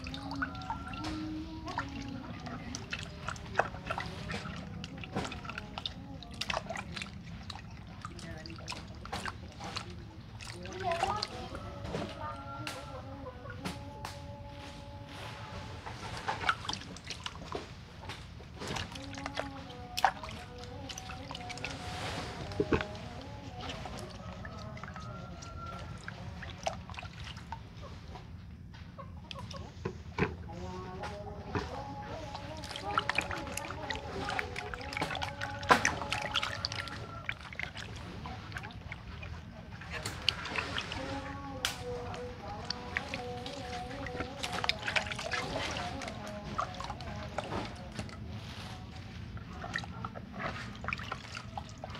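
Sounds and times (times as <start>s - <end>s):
hens clucking: 0.0s - 18.2s, 18.9s - 51.9s
washing by hand in water: 0.0s - 51.9s.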